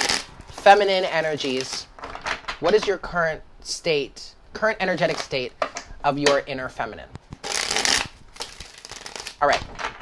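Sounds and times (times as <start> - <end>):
cards being shuffled: 0.0 - 2.9, 5.0 - 5.4, 7.1 - 10.0.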